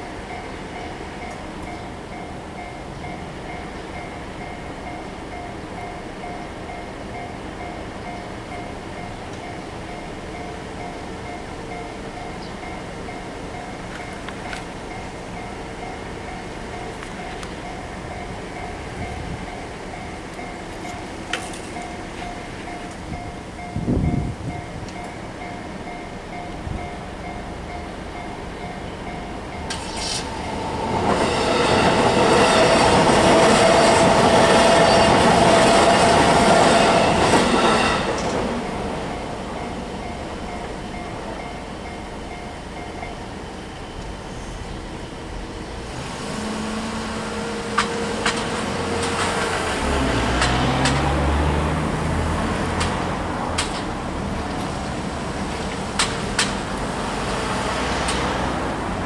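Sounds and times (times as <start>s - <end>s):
level crossing warning bell: 0.0s - 44.1s
electric train passing: 0.0s - 59.0s
road vehicles moving off: 0.0s - 59.0s.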